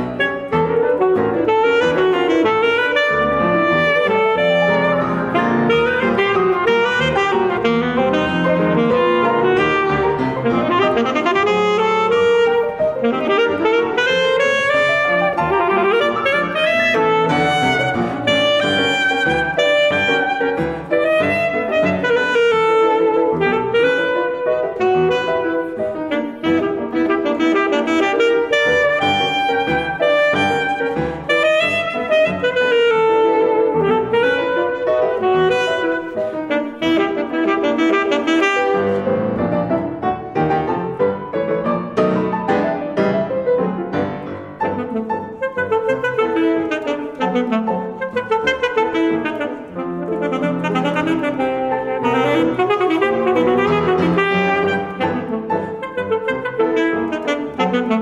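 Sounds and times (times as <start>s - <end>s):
alto saxophone melody: 0.0s - 58.0s
piano accompaniment: 0.0s - 58.0s.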